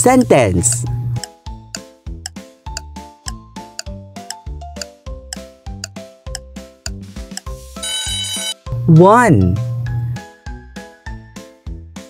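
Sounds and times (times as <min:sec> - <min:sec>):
alarm clock ring: 0:07.8 - 0:08.6.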